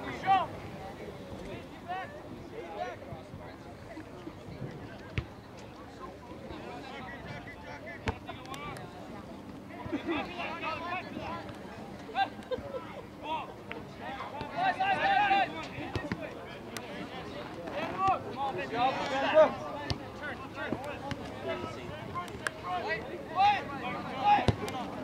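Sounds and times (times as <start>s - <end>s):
voices shouting: 14.2s - 15.8s.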